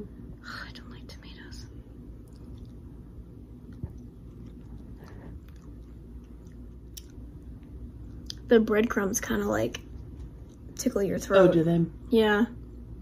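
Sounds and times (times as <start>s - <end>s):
low room hum: 0.0s - 13.0s
person chewing: 2.2s - 8.5s.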